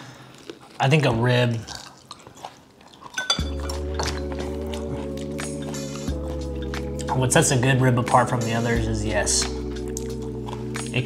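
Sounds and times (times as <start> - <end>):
chopsticks clinking on bowls: 3.0 - 4.3
music with held chord and bass: 3.3 - 11.0.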